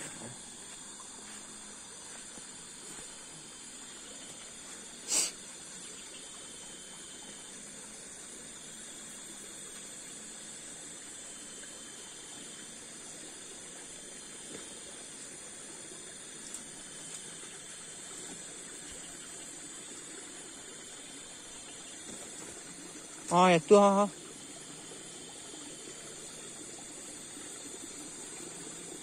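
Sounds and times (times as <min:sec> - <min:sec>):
night insects chirring: 0:00.0 - 0:29.0.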